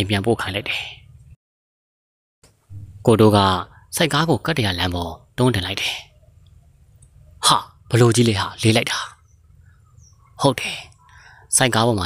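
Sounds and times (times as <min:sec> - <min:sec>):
faint low hum: 0:02.6 - 0:11.4
person speaking: 0:02.7 - 0:06.1, 0:07.4 - 0:09.2.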